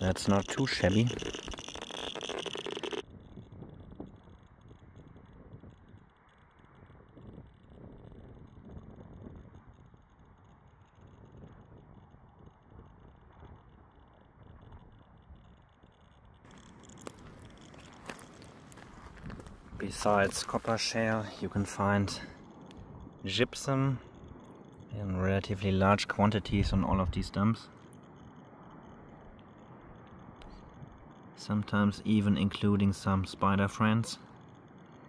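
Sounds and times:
radiation meter clicking rapidly: 0:00.0 - 0:35.0.

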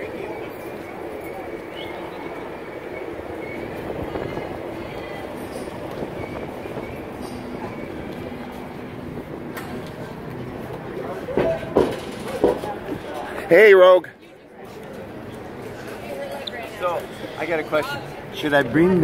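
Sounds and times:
faint voices: 0:00.0 - 0:19.0
street traffic rumble: 0:00.0 - 0:19.0.

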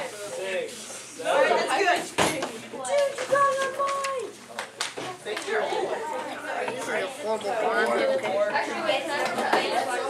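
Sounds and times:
students' voices: 0:00.0 - 0:10.0.

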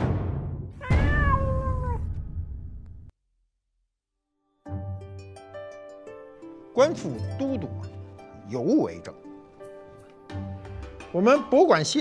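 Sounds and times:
long cat meow: 0:00.8 - 0:02.1.

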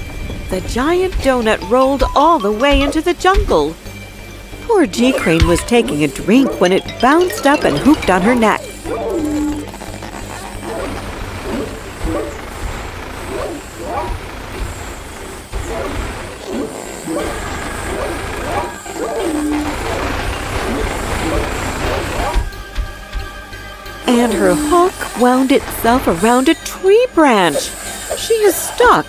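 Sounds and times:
background music: 0:00.0 - 0:14.6, 0:15.4 - 0:29.0
cartoon engine rumbling: 0:00.3 - 0:03.9, 0:04.6 - 0:22.6
wordless vocal cries: 0:17.0 - 0:19.6.

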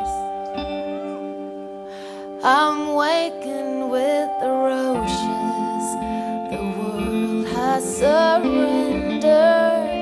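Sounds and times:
woman singing into microphone: 0:00.0 - 0:01.1, 0:02.2 - 0:10.0
electric guitar held notes: 0:00.0 - 0:03.2.

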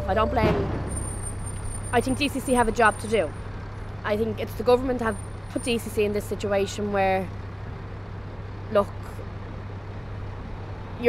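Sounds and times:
city background rumble: 0:00.0 - 0:11.0.

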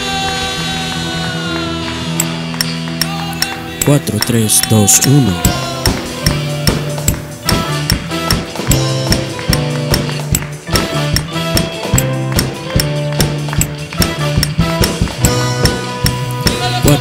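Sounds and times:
electric bass low notes: 0:00.0 - 0:17.0
electric guitar: 0:00.0 - 0:17.0
keyboard: 0:00.0 - 0:17.0
drum kit with hi-hat ticks: 0:02.2 - 0:17.0.

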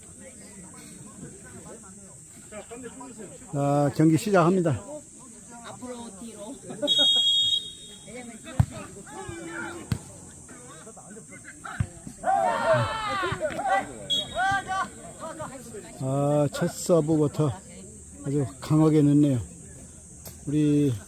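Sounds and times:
referee whistle: 0:06.8 - 0:08.3, 0:14.0 - 0:14.7
players shouting: 0:06.8 - 0:10.2, 0:11.6 - 0:15.9
ball being kicked: 0:08.5 - 0:10.1.

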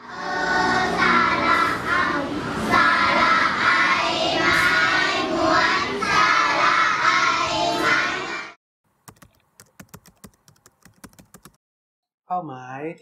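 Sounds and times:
children singing with music: 0:00.0 - 0:08.6.

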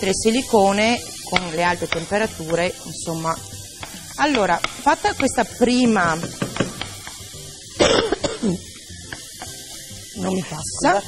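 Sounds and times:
woman coughing: 0:07.8 - 0:08.7.

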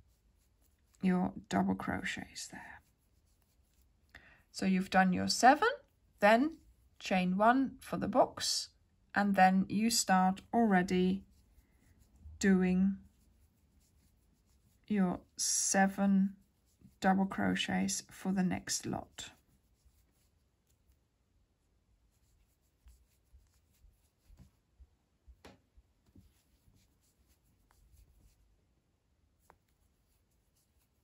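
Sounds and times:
yarn rubbing over crochet hook: 0:00.0 - 0:07.1, 0:09.8 - 0:21.1, 0:22.0 - 0:24.7, 0:25.4 - 0:28.5, 0:29.3 - 0:31.0.

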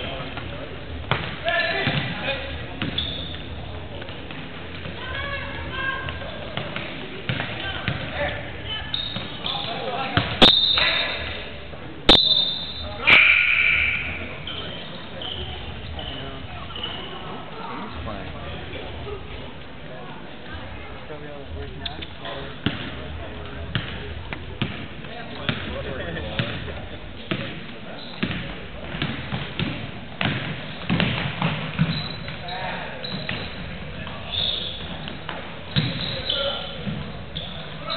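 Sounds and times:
crowd voices: 0:00.0 - 0:37.9
basketball bouncing on wood floor: 0:28.2 - 0:32.4, 0:34.8 - 0:36.1.

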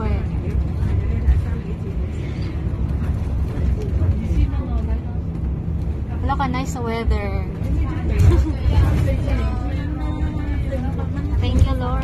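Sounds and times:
road and engine rumble in vehicle: 0:00.0 - 0:12.0.

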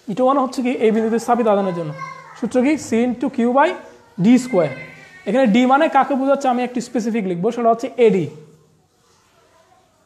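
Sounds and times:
person talking: 0:00.0 - 0:08.6.

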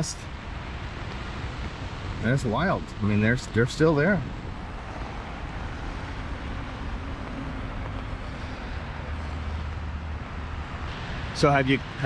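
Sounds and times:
river flowing: 0:00.0 - 0:12.0
road traffic rushing: 0:00.0 - 0:12.0.

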